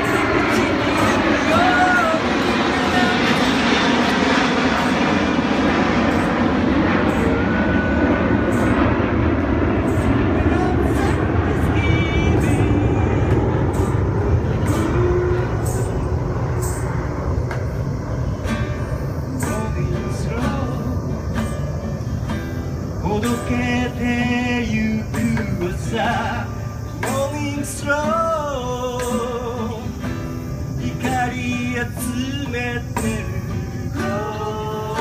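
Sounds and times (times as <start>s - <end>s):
man singing: 0.0s - 3.7s, 10.3s - 15.1s, 19.3s - 21.5s, 23.0s - 30.1s, 30.8s - 35.0s
acoustic guitar: 0.0s - 4.2s, 6.1s - 35.0s
aircraft rumbling overhead: 0.0s - 35.0s.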